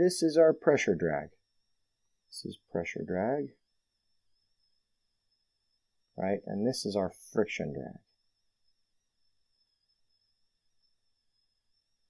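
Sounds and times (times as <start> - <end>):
faint electrical hiss and hum: 0.0 - 12.0.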